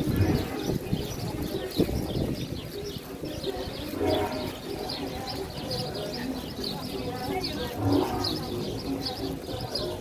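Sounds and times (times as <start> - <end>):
birds chirping: 0.0 - 10.0
outdoor background noise: 0.0 - 10.0.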